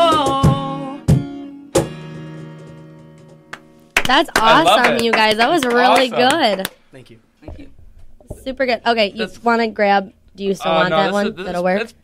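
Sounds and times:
acoustic guitar chords ringing: 0:00.0 - 0:06.4.

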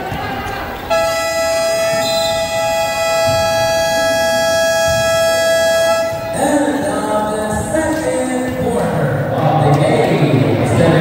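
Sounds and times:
arena game horn: 0:00.9 - 0:07.3.

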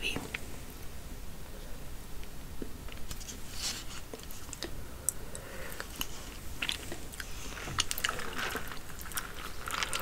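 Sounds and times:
chewing crispy fried chicken: 0:05.8 - 0:10.0.

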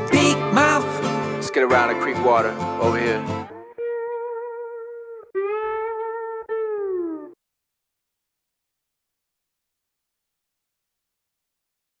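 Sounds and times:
slide guitar notes: 0:00.0 - 0:07.4.

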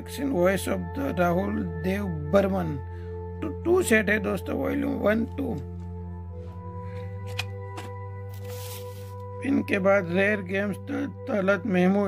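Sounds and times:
soft background music: 0:00.0 - 0:12.0
plastic cassette cases handled: 0:07.2 - 0:08.6.

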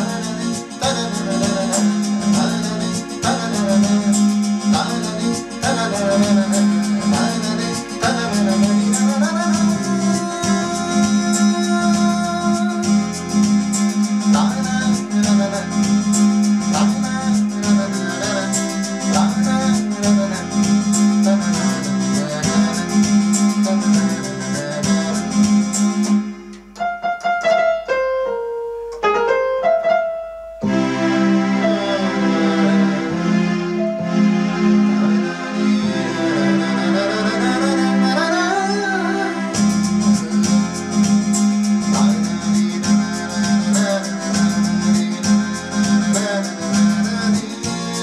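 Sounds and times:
steady beat: 0:00.0 - 0:27.6, 0:30.5 - 0:48.0
keyboard and piano song: 0:00.0 - 0:48.0
keyboard single notes stepping down: 0:00.0 - 0:48.0.

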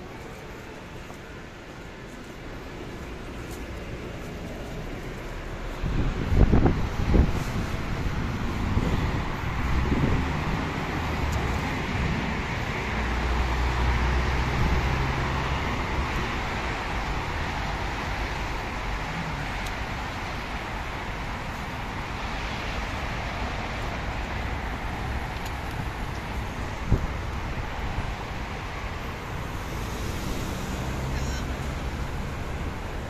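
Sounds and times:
low engine hum: 0:00.0 - 0:33.0
road traffic noise: 0:00.0 - 0:33.0.

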